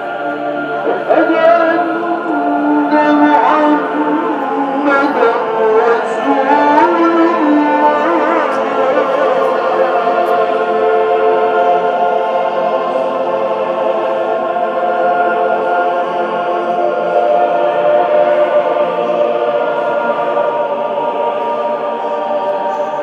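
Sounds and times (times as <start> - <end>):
choir singing held chords: 0.0 - 23.0.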